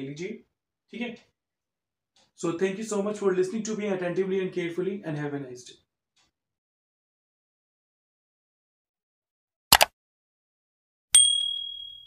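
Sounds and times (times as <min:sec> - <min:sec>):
notification bell ding: 0:11.2 - 0:12.0.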